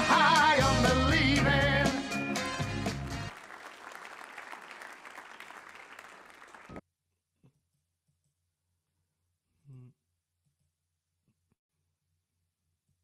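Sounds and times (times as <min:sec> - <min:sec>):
audience applauding: 0:02.4 - 0:06.8.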